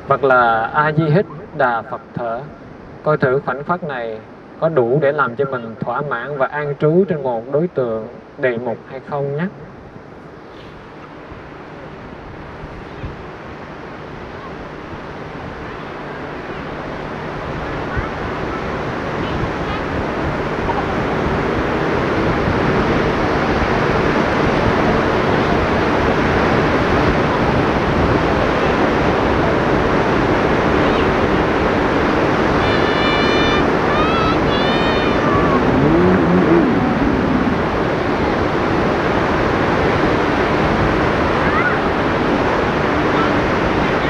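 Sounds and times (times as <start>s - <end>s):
sea surf: 0.0s - 44.0s
wind on microphone: 9.6s - 44.0s
distant voice: 32.2s - 39.0s.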